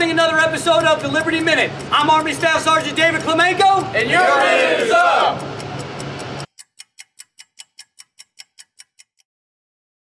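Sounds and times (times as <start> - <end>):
clock-like ticking: 0.0 - 9.3
group of men shouting: 3.8 - 5.4.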